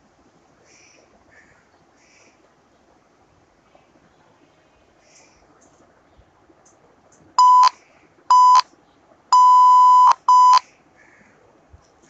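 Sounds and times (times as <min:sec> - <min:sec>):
morse code beeps: 0:07.4 - 0:08.6, 0:09.4 - 0:10.6.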